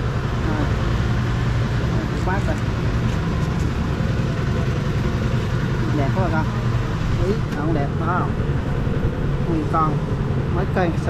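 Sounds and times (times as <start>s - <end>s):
generator engine droning: 0.0s - 11.0s.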